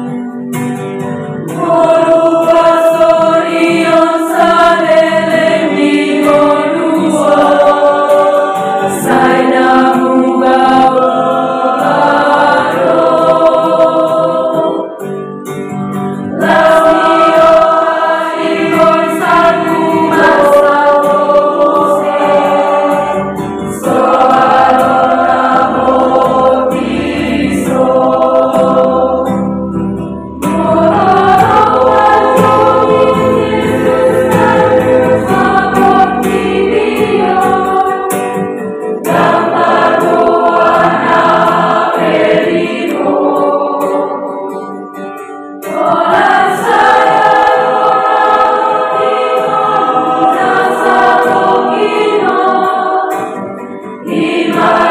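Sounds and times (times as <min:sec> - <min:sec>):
choir singing in parts: 0:00.0 - 0:54.9
strummed acoustic guitar: 0:00.0 - 0:54.9.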